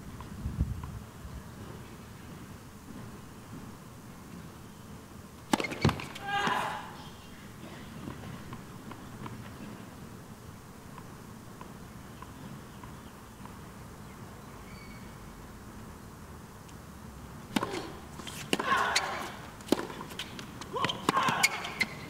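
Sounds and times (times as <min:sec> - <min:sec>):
tennis ball strikes: 0:05.5 - 0:06.6, 0:17.5 - 0:22.0
short loud shout: 0:06.2 - 0:07.0, 0:18.6 - 0:19.4.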